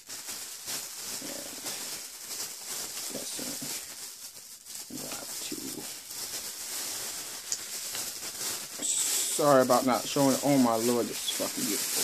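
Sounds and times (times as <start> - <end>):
packaging rustling: 0.0 - 12.0.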